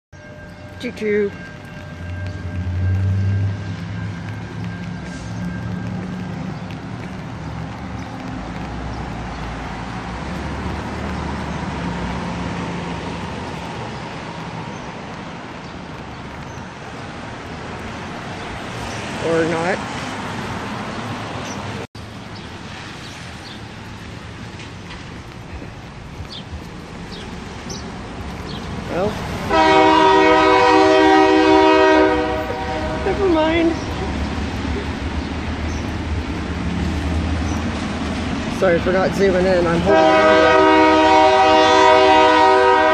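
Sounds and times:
tyres hissing on wet road: 0.9 - 42.9
locomotive air horn chord: 29.5 - 33.3, 39.9 - 42.9.

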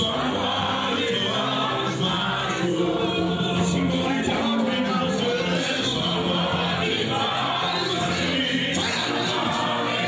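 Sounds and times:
choir singing gospel: 0.0 - 10.0.

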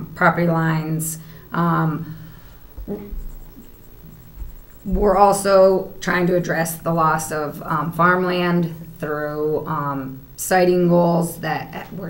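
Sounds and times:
knocks on a tabletop: 2.8 - 5.4.

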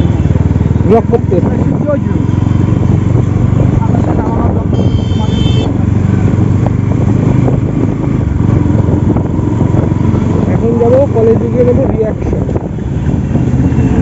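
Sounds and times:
motorcycle engine running: 0.0 - 14.0.

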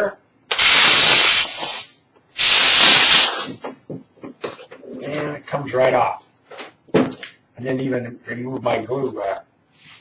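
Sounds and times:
compressed air blow gun hissing: 0.5 - 3.6.

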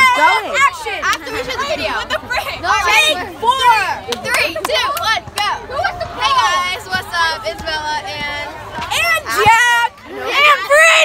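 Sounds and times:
girls' excited vocal sounds: 0.0 - 11.0
sharp claps: 4.0 - 5.6.

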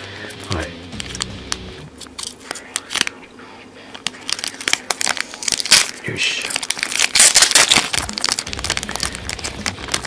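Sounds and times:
foil packet crinkling: 2.0 - 3.2, 3.9 - 10.0.

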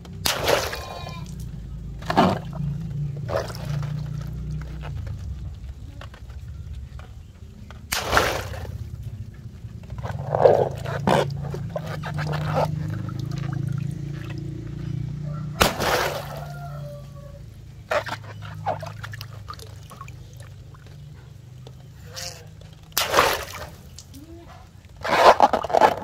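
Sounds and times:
water balloon bursting: 0.0 - 4.8, 7.8 - 9.0, 15.6 - 16.6, 22.9 - 24.2
water splashing into a tub: 0.0 - 5.3, 7.9 - 9.0, 10.0 - 17.2, 17.8 - 21.1, 22.9 - 24.3
steady low hum: 0.0 - 26.0
water dripping: 7.7 - 16.8, 17.5 - 22.0, 22.6 - 24.3.

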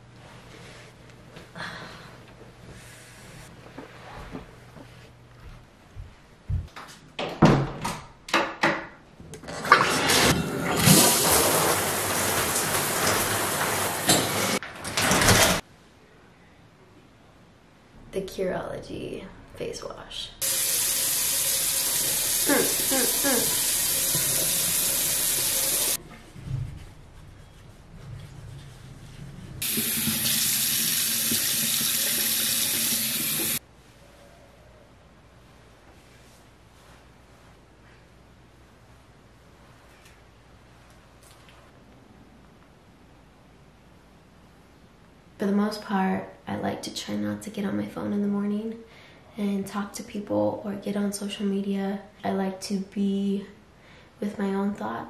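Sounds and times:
shower water spraying: 10.8 - 14.6, 20.4 - 26.0, 29.6 - 33.6
faucet running into sink: 20.4 - 26.0, 29.6 - 33.6.

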